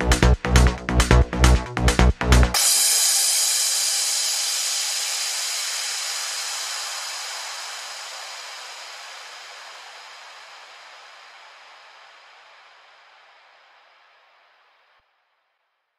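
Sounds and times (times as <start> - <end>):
synthesized white noise hiss: 3.0 - 15.0.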